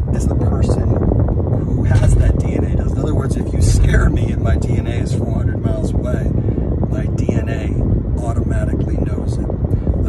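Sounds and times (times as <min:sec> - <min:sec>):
man talking: 0:00.0 - 0:01.0, 0:01.6 - 0:09.5
car road and engine rumble: 0:00.0 - 0:10.0.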